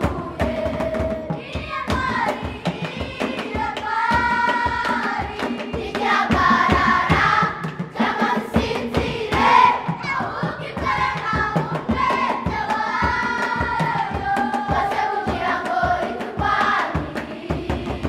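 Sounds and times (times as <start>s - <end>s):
children's choir singing: 0.0s - 18.0s.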